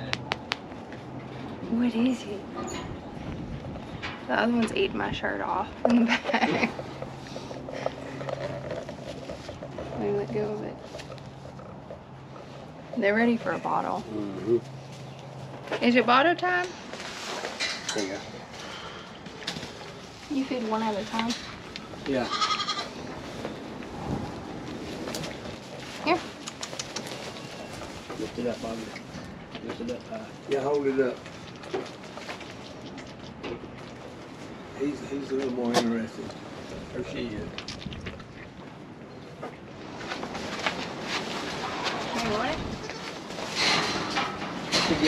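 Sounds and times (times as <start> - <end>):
rustling: 6.0 - 15.8, 16.7 - 35.6, 36.3 - 45.0.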